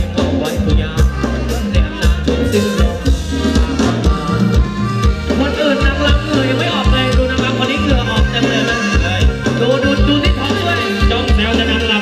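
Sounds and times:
band playing upbeat dance music: 0.0s - 12.0s
bass line: 0.0s - 12.0s.

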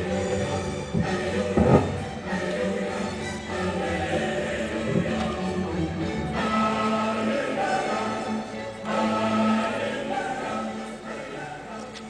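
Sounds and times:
choir singing long notes: 0.0s - 12.0s.

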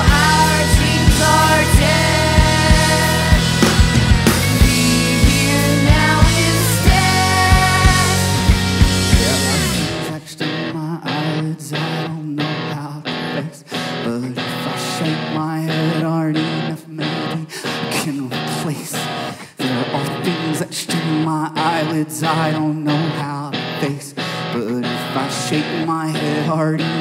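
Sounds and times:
held bass notes: 0.0s - 10.1s
electric guitar repeating figure: 0.0s - 27.0s
live rock band: 0.0s - 27.0s.

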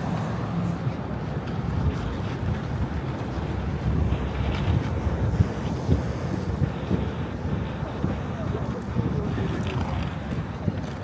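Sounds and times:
city street traffic rumble: 0.0s - 11.0s
wind buffeting microphone: 0.0s - 11.0s.

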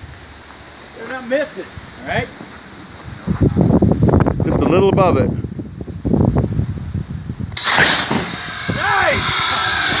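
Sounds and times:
air cannon blast: 7.6s - 10.0s.

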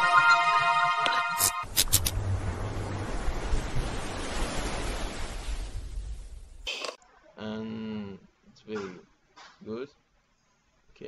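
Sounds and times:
sea waves rushing: 2.1s - 6.3s.

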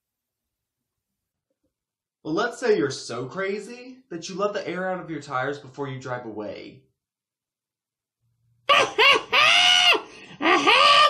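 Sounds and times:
man's high-pitched falsetto cries: 8.7s - 11.0s.

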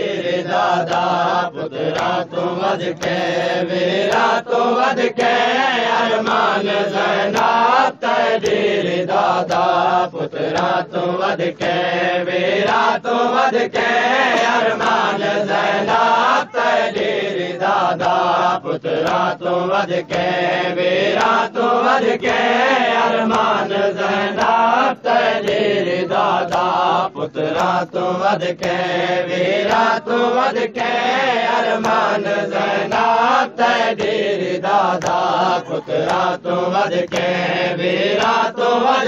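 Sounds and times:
person chanting a lament: 0.0s - 39.0s.

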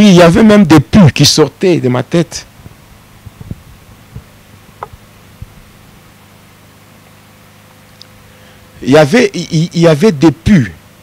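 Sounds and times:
electrical hum: 0.0s - 11.0s
handheld microphone thumps: 2.6s - 5.7s
faint click: 8.0s - 8.2s.

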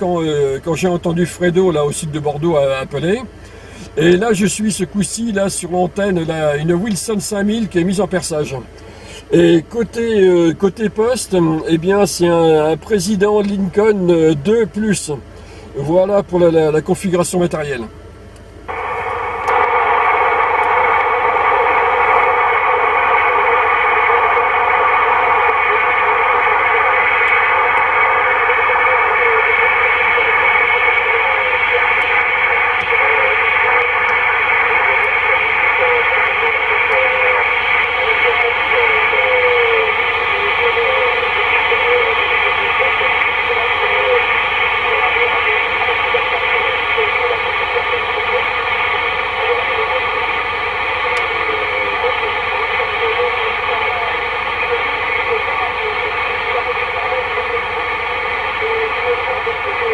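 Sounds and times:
radio band noise hiss: 0.0s - 59.9s.

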